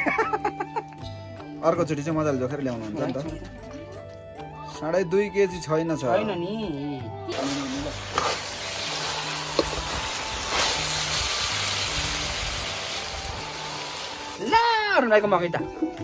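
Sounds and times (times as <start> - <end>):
background music: 0.0 - 16.0
chicken sizzling in a wok: 7.3 - 14.9.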